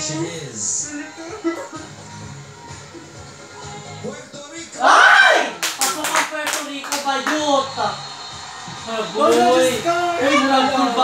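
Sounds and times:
person shouting: 4.8 - 5.6
hand claps: 5.6 - 7.5.

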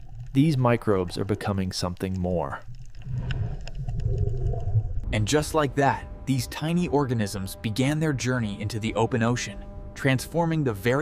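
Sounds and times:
low underwater rumble: 0.0 - 8.0
faint wavering tone: 5.1 - 11.0.

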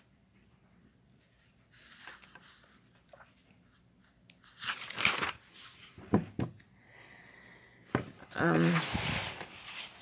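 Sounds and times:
paper page crinkling: 1.7 - 5.9, 8.3 - 10.0.

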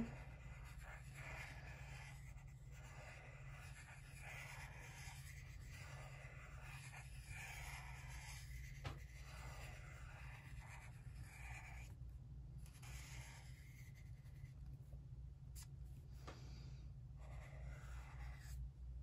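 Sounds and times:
marker scratching on paper: 0.0 - 12.0, 12.6 - 14.9, 17.2 - 18.6.

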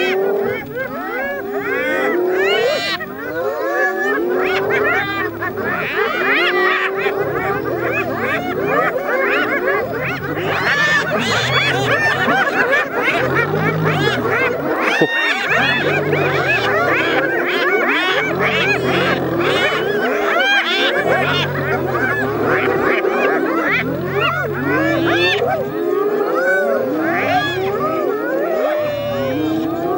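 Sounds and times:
hyenas calling: 0.0 - 29.9
deep growl: 6.9 - 29.9.

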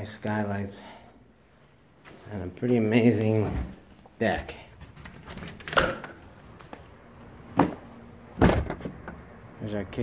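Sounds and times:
door thunk: 8.4 - 9.0.

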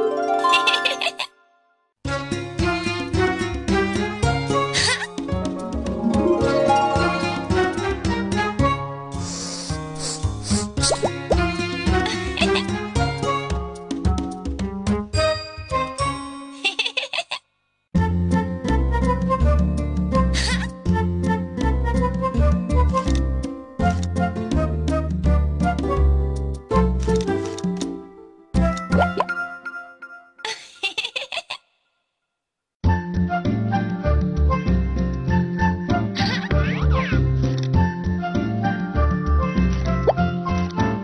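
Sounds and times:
bright children's jingle: 0.0 - 1.3
upward-sliding plop sounds: 28.9 - 29.3.

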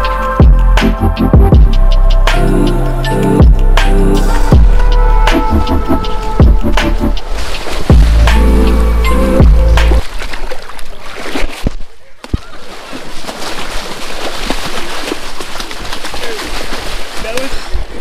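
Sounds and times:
music with heavy bass line: 0.0 - 10.0
wading through shallow water: 4.6 - 18.0.

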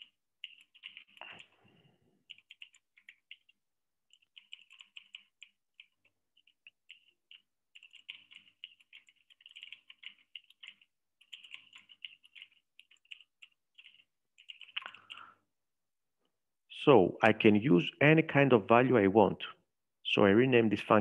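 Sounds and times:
typing on computer keyboard: 0.0 - 1.6, 2.2 - 15.3.

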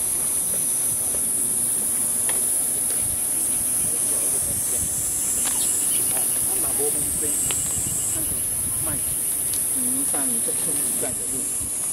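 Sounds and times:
high-pitched insect chorus: 0.0 - 11.9.

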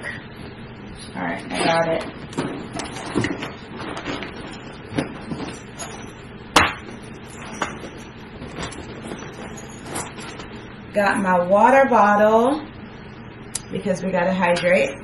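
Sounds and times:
objects and bag being handled: 1.6 - 10.7.

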